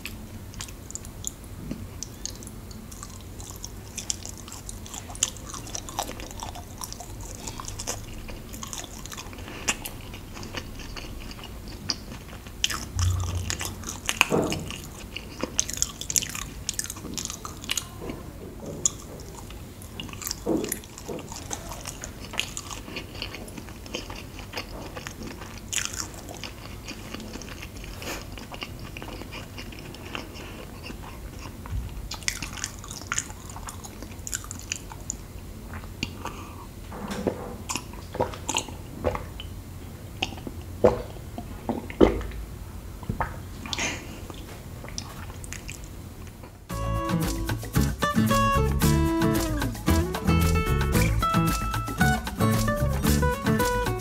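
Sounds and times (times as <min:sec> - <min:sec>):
chewing and biting sweets: 0:00.0 - 0:36.4, 0:37.7 - 0:39.5
wet mouth clicks: 0:47.2 - 0:54.0.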